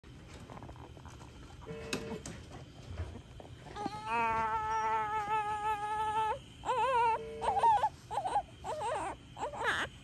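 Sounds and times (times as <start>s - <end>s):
newborn baby whimpering: 3.6s - 10.0s
baby crying: 3.8s - 10.0s.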